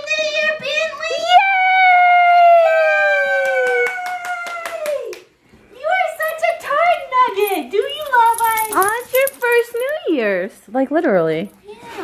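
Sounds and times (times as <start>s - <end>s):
hand clapping: 3.4s - 5.4s.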